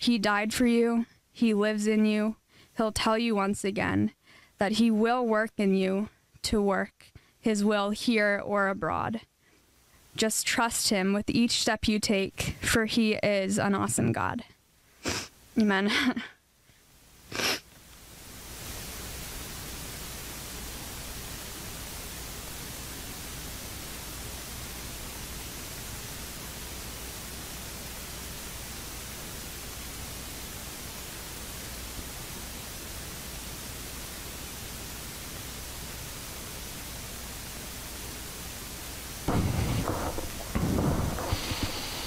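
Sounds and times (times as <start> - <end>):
electronic hiss: 16.9 - 42.0
low hum: 39.2 - 42.0.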